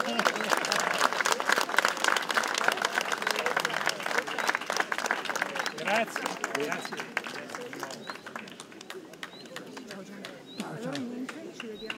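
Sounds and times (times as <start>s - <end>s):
low conversation: 0.0s - 11.9s.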